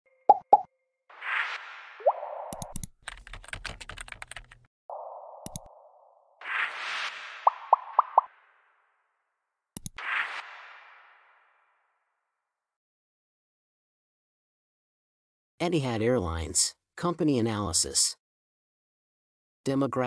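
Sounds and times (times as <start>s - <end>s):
keyboard typing clicks: 2.5s - 4.6s, 5.4s - 5.7s, 9.8s - 10.0s.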